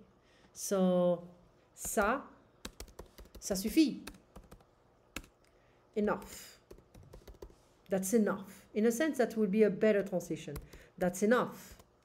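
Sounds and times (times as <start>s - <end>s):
computer keyboard keystrokes: 1.8s - 5.3s, 6.2s - 7.5s, 10.0s - 10.8s.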